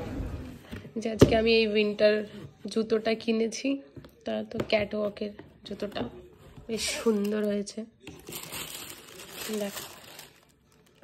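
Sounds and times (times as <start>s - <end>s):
tissue paper crinkling: 8.2s - 11.0s.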